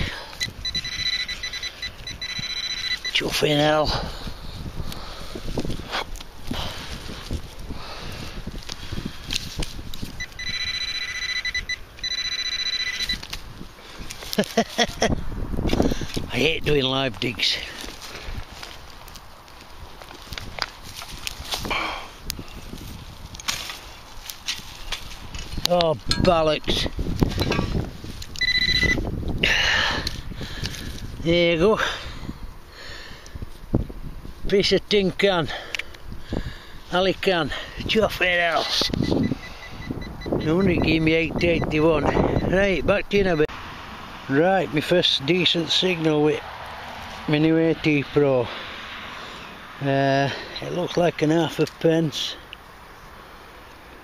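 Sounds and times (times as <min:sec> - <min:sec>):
metal detector beeping: 0:00.0 - 0:03.8, 0:10.2 - 0:13.4, 0:28.4 - 0:29.0, 0:38.5 - 0:42.8, 0:50.4 - 0:51.0
metal detector buzzing tone: 0:00.4 - 0:03.4, 0:10.2 - 0:13.3, 0:28.4 - 0:29.0
soil scraping and crunching: 0:01.4 - 0:11.4, 0:12.0 - 0:29.0, 0:29.8 - 0:32.0, 0:44.3 - 0:52.4.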